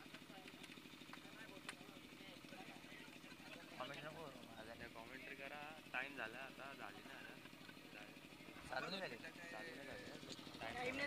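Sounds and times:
idling engine throb: 0.0s - 11.0s.

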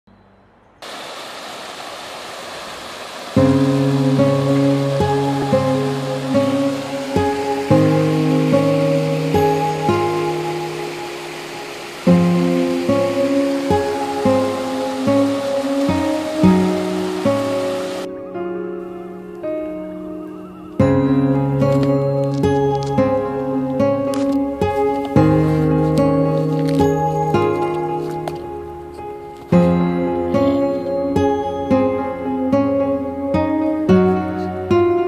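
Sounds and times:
stream rushing over rocks: 0.8s - 18.1s, 21.6s - 28.7s
instrumental background music: 3.4s - 35.0s.

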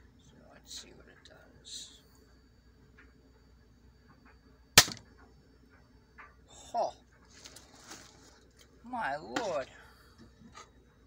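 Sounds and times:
faint handling rustling: 7.2s - 8.8s.

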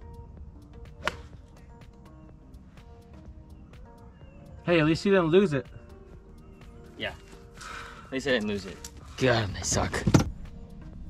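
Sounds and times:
golf club striking ball: 0.9s - 1.4s.

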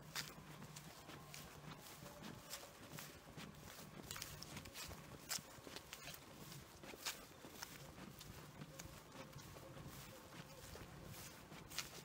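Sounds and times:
footsteps on grass and dry leaves: 0.0s - 12.0s.

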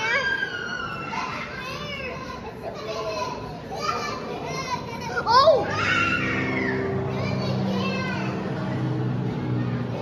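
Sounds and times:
children talking and calling out: 0.0s - 10.0s
crowd chatter: 0.0s - 10.0s.

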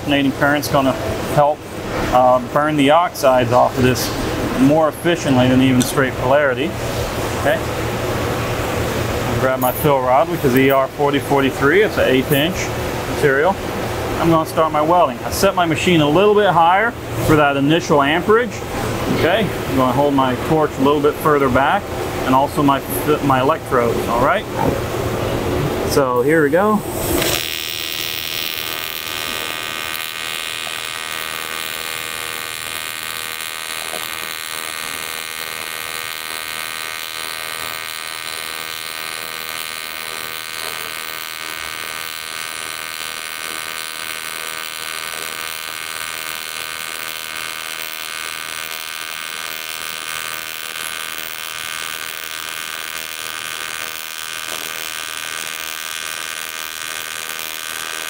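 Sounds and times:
welding arc buzzing: 18.6s - 58.0s.

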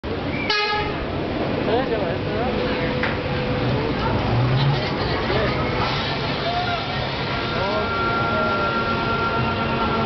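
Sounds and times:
crowd noise and voices: 0.0s - 10.0s
horn-like tone: 7.4s - 10.0s.

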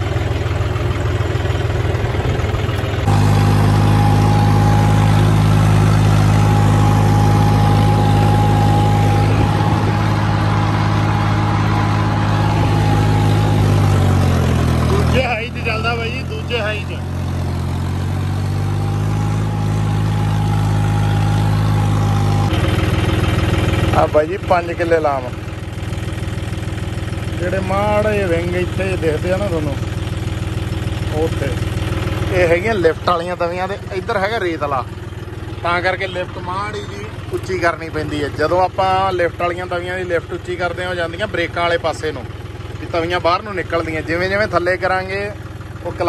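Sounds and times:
tractor diesel engine running: 0.0s - 46.0s.

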